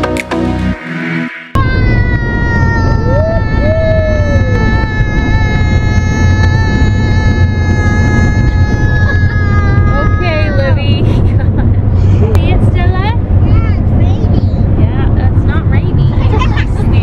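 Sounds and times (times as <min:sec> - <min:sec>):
background music: 0:00.0 - 0:01.6
road rumble inside van: 0:01.6 - 0:17.0.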